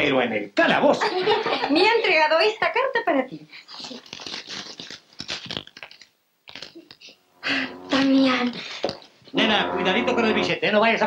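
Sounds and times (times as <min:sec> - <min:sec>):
paper crinkling and rustling: 0:03.7 - 0:07.1.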